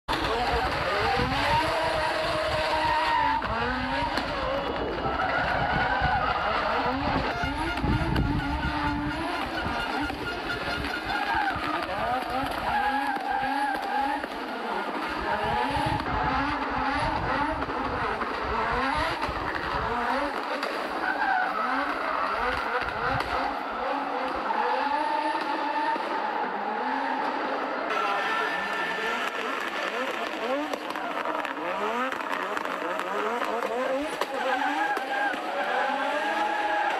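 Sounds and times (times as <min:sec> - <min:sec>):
rally car engine revving: 0:00.1 - 0:36.9.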